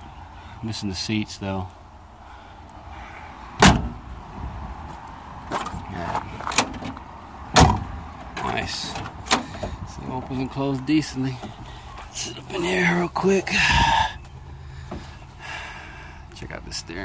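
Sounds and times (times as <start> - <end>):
car door slamming: 3.6 - 4.0, 6.4 - 8.0.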